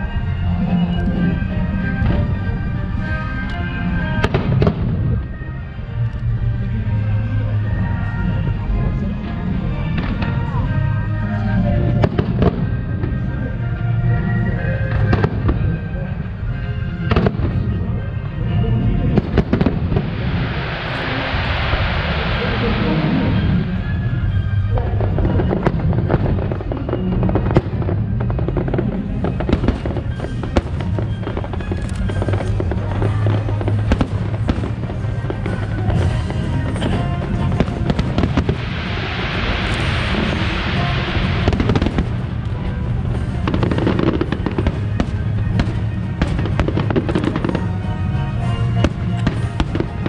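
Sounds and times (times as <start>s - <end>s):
low rumble: 0.0s - 50.0s
dense hiss: 19.8s - 24.7s, 37.2s - 42.9s.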